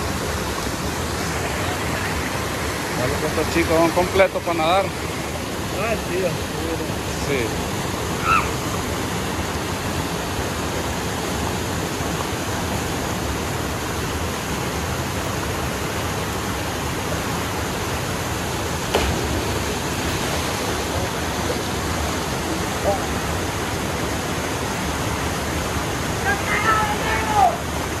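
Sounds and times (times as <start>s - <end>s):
waterfall rushing into pool: 0.0s - 28.0s.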